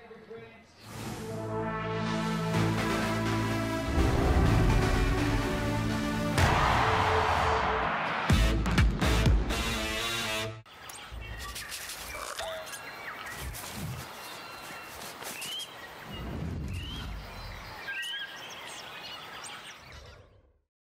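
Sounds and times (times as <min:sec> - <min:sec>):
bird chirps: 0:10.7 - 0:20.4
night bush ambience: 0:10.7 - 0:20.5.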